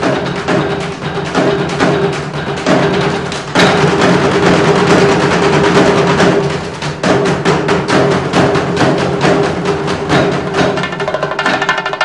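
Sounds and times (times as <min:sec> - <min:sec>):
drums beaten with sticks: 0:00.0 - 0:12.0
steady drum tone: 0:00.0 - 0:12.0.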